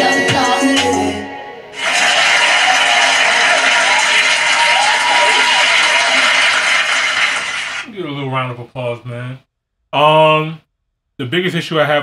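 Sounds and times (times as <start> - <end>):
song music: 0.0 - 6.2.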